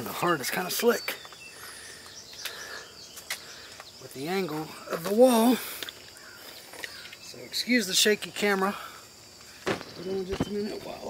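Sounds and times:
faint high bird chirp: 0.0 - 8.6, 9.7 - 11.0.

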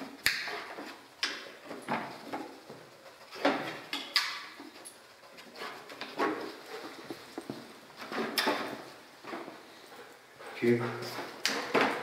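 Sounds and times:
paws clicking on hard floor: 0.4 - 12.0
dog sniffing: 4.7 - 11.7.

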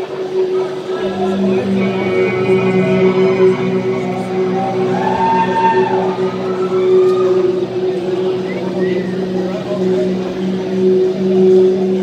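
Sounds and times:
amplified low drone: 0.0 - 12.0
crowd voices: 0.0 - 12.0.

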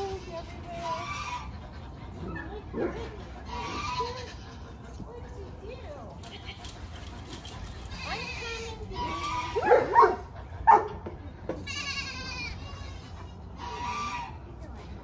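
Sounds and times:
goats bleating: 3.5 - 4.8, 11.6 - 14.4.

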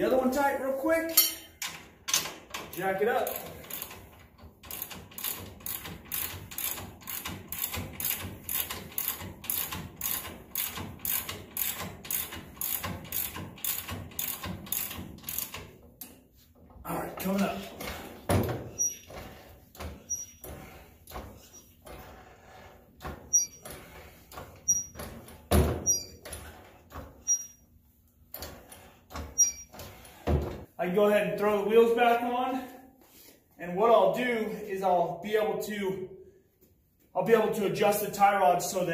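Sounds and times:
ratchet wrench clicking: 3.3 - 15.7
floor jack knocks and clunks: 17.2 - 22.2, 23.0 - 27.3, 28.3 - 30.7.

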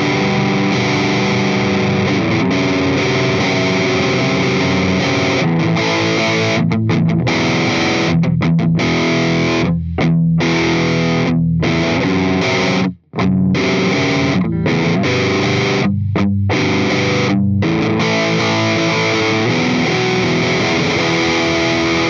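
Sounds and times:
distorted electric guitar chords: 0.0 - 22.0.

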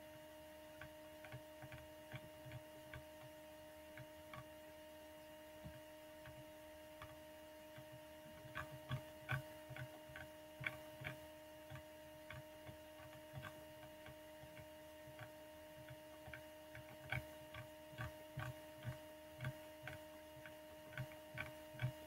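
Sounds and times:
faint ticking clicks: 0.0 - 4.6, 5.6 - 22.0
low electrical hum: 0.0 - 22.0.

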